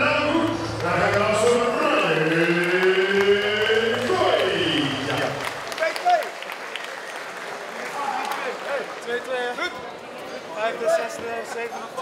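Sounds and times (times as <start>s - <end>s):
voices chanting long notes: 0.0s - 5.5s.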